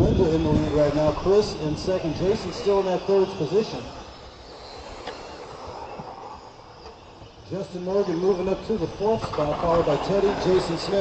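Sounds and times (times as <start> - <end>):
faint electric motor whine: 0.0 - 11.0
open-air noise: 0.0 - 11.0.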